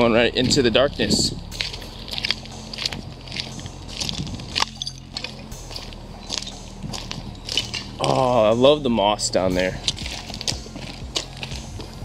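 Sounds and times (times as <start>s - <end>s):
footsteps crunching on gravel: 0.0s - 12.0s
steady low hum: 0.0s - 12.0s.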